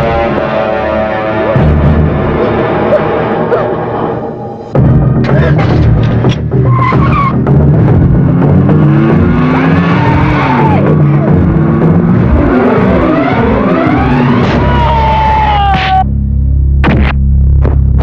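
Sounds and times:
car engine revving: 0:00.0 - 0:18.0
dramatic music: 0:00.0 - 0:18.0
tyres squealing: 0:06.6 - 0:07.4.

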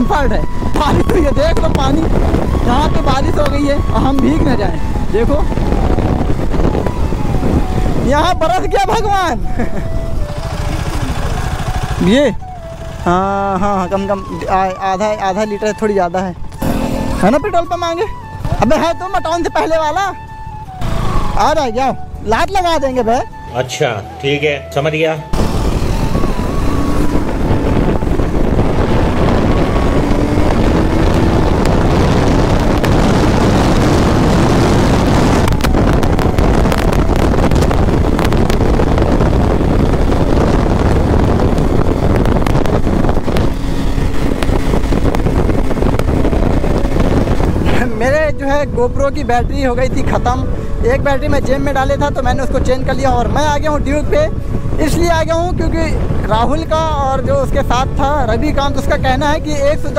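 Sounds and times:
wind buffeting microphone: 0:00.0 - 0:23.5, 0:25.2 - 0:59.9
motorcycle engine running: 0:09.1 - 0:14.7, 0:16.5 - 0:18.7, 0:25.4 - 0:48.8.

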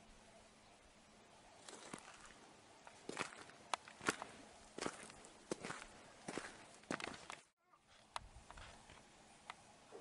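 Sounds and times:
footsteps on stony dirt path: 0:01.6 - 0:08.8.

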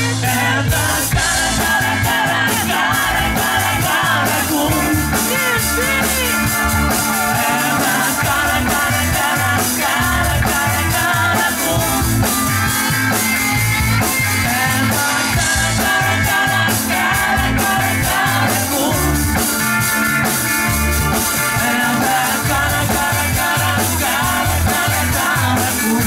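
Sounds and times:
drum kit beat: 0:00.0 - 0:26.0
electric guitars: 0:00.0 - 0:26.0
rock band playing live: 0:00.0 - 0:26.0.

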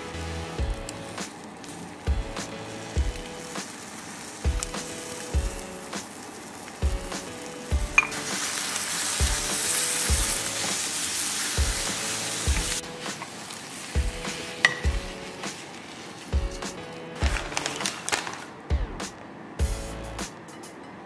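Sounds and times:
music with steady beat: 0:00.0 - 0:11.0, 0:11.6 - 0:13.4, 0:14.0 - 0:18.0, 0:18.6 - 0:21.0
eggs and ham sizzling in a skillet: 0:00.0 - 0:18.5
spatula stirring: 0:00.6 - 0:18.4.

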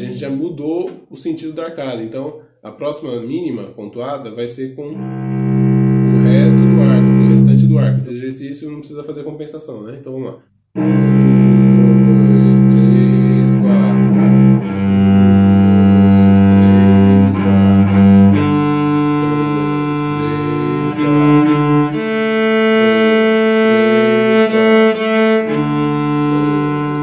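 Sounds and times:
bowed cello long notes: 0:04.9 - 0:08.1, 0:10.8 - 0:27.0.

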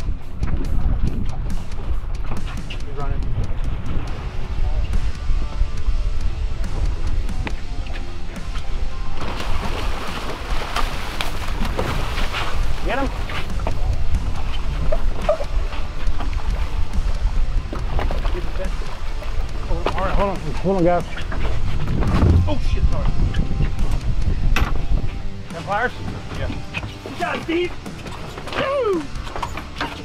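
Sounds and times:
wind noise on microphone: 0:00.0 - 0:27.0
background music: 0:00.0 - 0:30.0
water sloshing against hull: 0:06.6 - 0:30.0.

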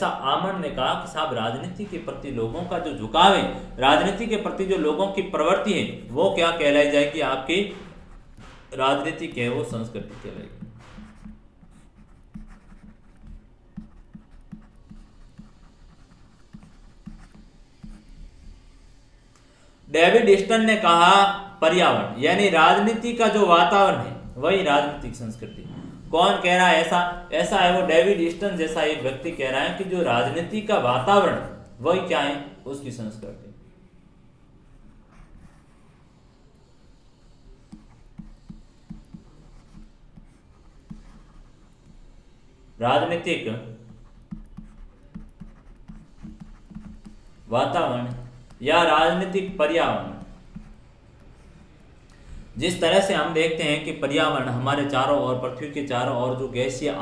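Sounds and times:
stylus writing on pen tablet: 0:01.0 - 0:19.3, 0:34.6 - 0:57.0.

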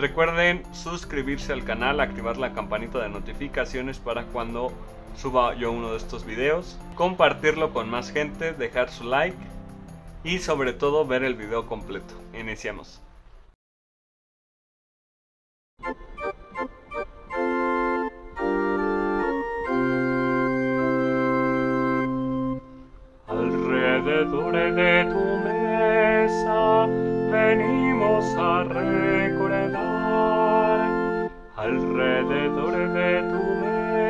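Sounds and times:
digital piano playing organ-like chords: 0:00.0 - 0:13.0, 0:15.8 - 0:34.0.

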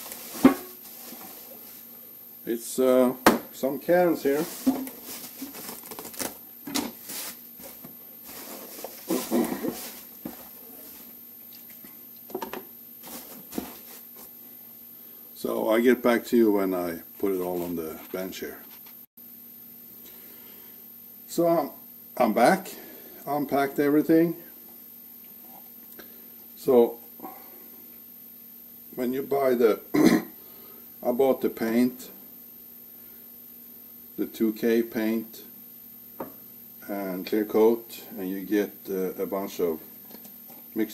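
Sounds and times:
bubble wrap rustling and crinkling: 0:00.0 - 0:01.9, 0:04.4 - 0:10.1
faint steady hum: 0:00.0 - 0:40.9.

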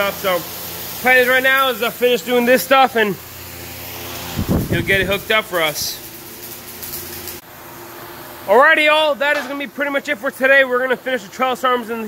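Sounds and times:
arc welding crackling hiss: 0:00.0 - 0:12.0.

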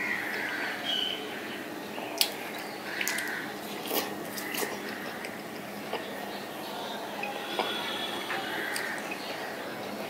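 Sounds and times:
person chewing wetly: 0:02.1 - 0:06.1.

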